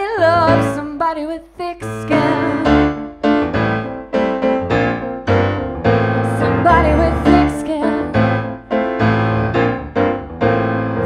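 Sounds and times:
piano chords: 0:00.0 - 0:11.0.

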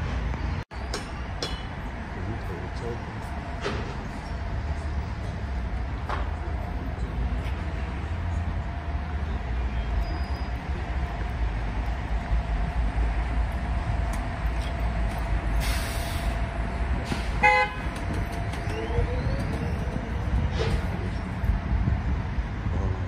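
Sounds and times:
street traffic rumble: 0:00.0 - 0:23.0
vehicle horn toot: 0:17.4 - 0:17.9.

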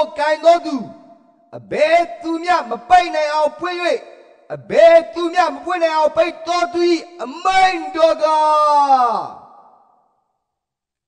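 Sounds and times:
man reading aloud: 0:00.0 - 0:09.4.

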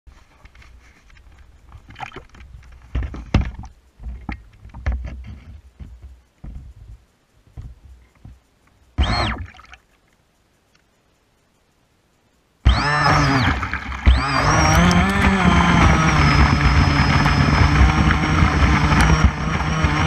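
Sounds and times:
water lapping against hull: 0:01.6 - 0:07.0
low thumps and knocks: 0:01.6 - 0:09.4.

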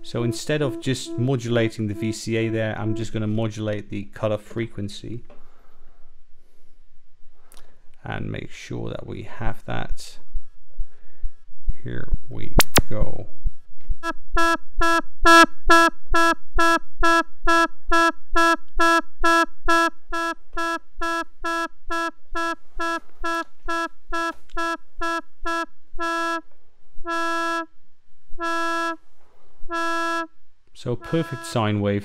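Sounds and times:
pulsing synthesizer drone: 0:00.0 - 0:03.1.

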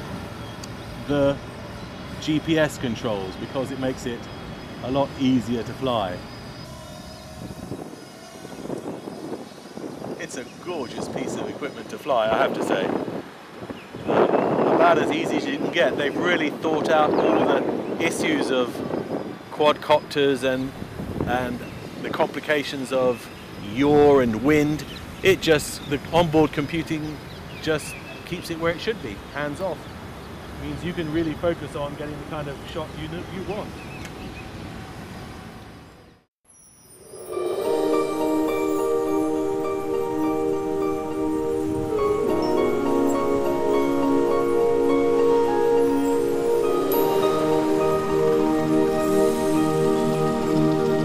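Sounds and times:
low rumbling outdoor noise: 0:00.0 - 0:19.6, 0:37.1 - 0:51.0
quadcopter drone buzzing: 0:03.3 - 0:11.9, 0:37.0 - 0:51.0.

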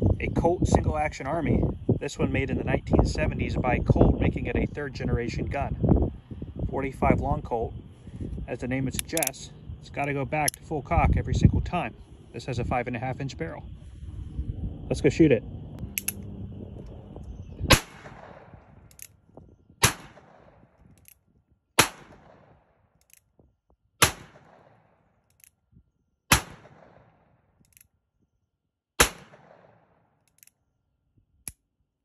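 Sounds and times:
light click: 0:08.9 - 0:09.4, 0:15.9 - 0:16.2
revolver hammer cocking clicks: 0:08.9 - 0:09.4, 0:15.8 - 0:16.2, 0:18.8 - 0:19.2, 0:20.9 - 0:21.2, 0:23.0 - 0:23.3, 0:25.3 - 0:25.6, 0:27.6 - 0:27.9, 0:30.2 - 0:30.6
revolver gunshots: 0:17.7 - 0:19.0, 0:19.8 - 0:20.7, 0:21.8 - 0:22.7, 0:24.0 - 0:25.0, 0:26.3 - 0:27.3, 0:29.0 - 0:30.0.

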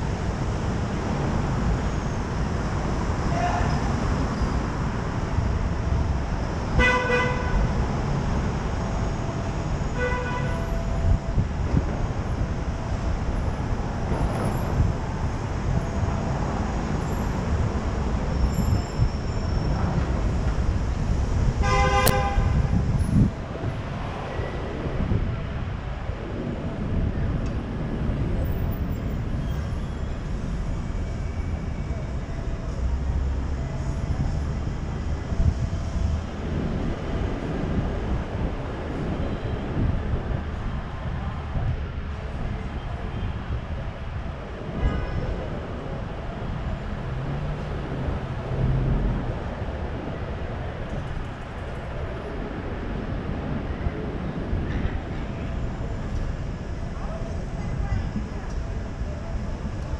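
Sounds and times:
street traffic rumble: 0:00.0 - 0:59.9
car horn toot: 0:06.8 - 0:07.6, 0:21.6 - 0:22.7.

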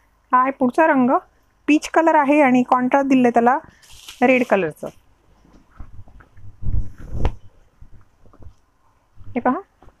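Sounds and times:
fabric rustling: 0:03.7 - 0:10.0.

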